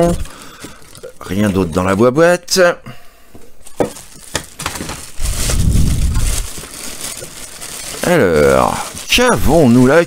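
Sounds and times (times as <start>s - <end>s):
plastic bag crinkling: 0.0s - 2.2s, 3.6s - 10.0s.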